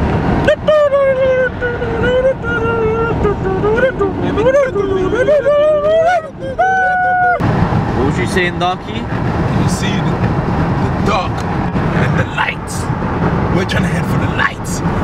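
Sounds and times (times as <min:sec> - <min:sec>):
high voice singing wordless tune: 0:00.4 - 0:07.4.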